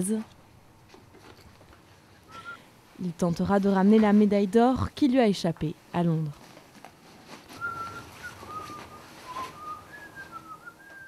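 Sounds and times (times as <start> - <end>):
faint background noise: 0.0 - 11.0
person whistling a slow tune: 2.3 - 2.6, 7.6 - 11.0.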